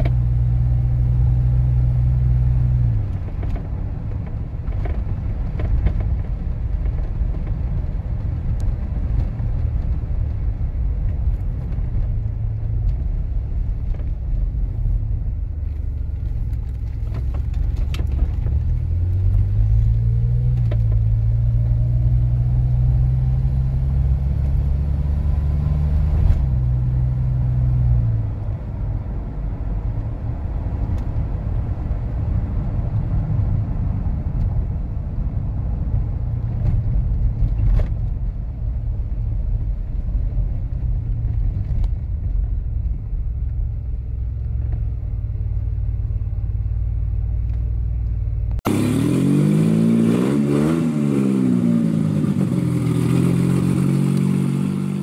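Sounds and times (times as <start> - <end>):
car engine droning: 0.0 - 55.0.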